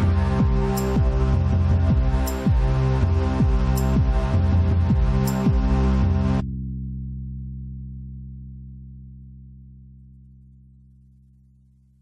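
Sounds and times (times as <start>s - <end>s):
low sustained drone: 0.0s - 6.4s.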